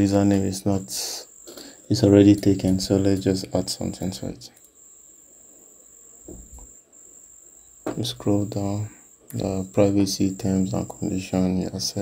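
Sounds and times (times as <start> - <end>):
faint high-pitched whine: 0.0 - 12.0
low background hiss: 0.0 - 12.0.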